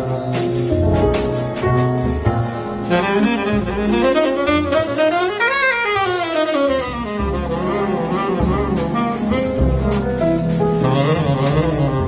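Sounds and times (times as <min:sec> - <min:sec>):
big band accompaniment: 0:00.0 - 0:12.0
tenor saxophone solo: 0:02.8 - 0:09.8, 0:10.8 - 0:12.0.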